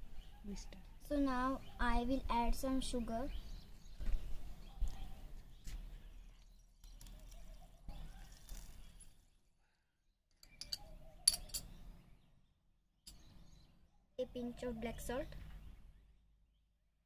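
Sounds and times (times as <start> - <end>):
spoon clinking against glass: 10.4 - 11.8.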